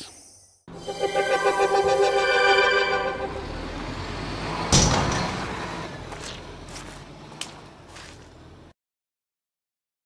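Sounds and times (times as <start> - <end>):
car engine rumble: 3.2 - 8.7.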